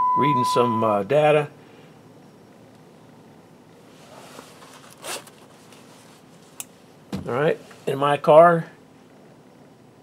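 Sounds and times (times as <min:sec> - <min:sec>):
clothing rustle: 0:03.8 - 0:06.6
soft rustle: 0:03.8 - 0:06.6.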